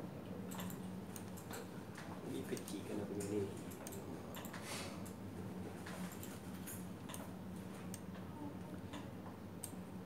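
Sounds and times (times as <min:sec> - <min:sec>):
light irregular clicks: 0:00.5 - 0:01.6, 0:08.9 - 0:09.8.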